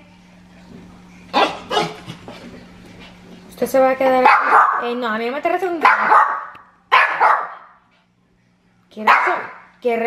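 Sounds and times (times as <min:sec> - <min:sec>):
small dog barking: 0:01.3 - 0:02.0, 0:04.2 - 0:04.9, 0:05.8 - 0:07.8, 0:09.1 - 0:09.6.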